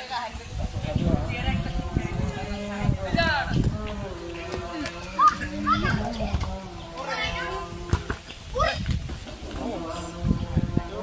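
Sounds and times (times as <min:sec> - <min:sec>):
boys shouting: 0:04.7 - 0:06.4, 0:07.0 - 0:07.8.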